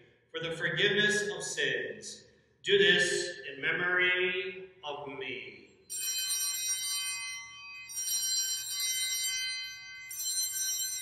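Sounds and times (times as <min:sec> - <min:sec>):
altar bells ringing: 0:05.8 - 0:11.0.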